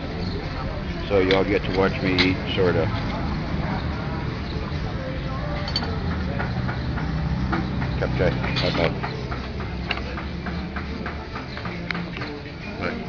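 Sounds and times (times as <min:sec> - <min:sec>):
diners chattering: 0:00.0 - 0:13.0.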